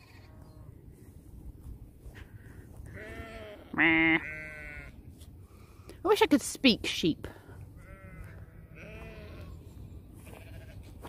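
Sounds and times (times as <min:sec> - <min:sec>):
sheep bleating: 0:02.9 - 0:05.0, 0:07.8 - 0:09.6, 0:10.2 - 0:10.8.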